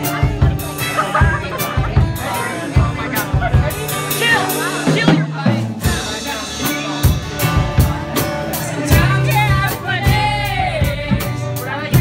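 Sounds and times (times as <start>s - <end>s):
drum kit beat: 0.0s - 12.0s
man singing: 0.0s - 12.0s
strummed acoustic guitar: 0.0s - 12.0s.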